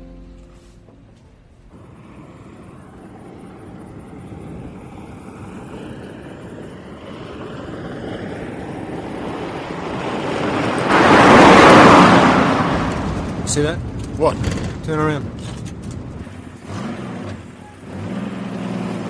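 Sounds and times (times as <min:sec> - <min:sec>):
car engine and tyre noise: 0:00.0 - 0:19.0
car passing at speed: 0:01.5 - 0:15.2.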